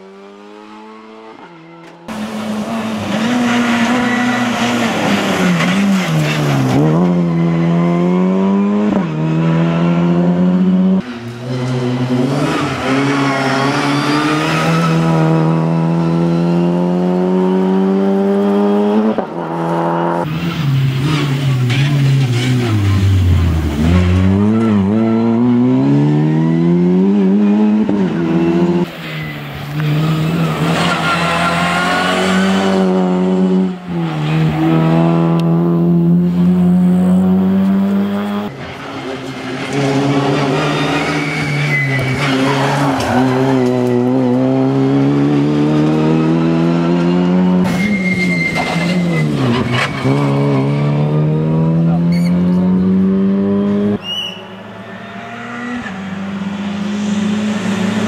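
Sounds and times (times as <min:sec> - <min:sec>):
rally car engine revving: 0:00.0 - 0:54.1.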